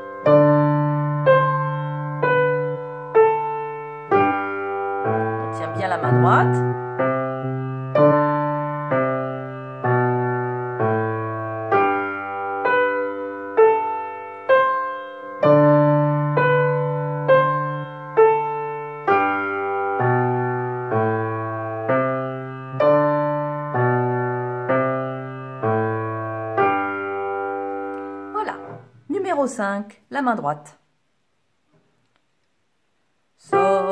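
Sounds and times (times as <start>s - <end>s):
upright piano playing: 0.0s - 29.3s, 33.4s - 33.9s.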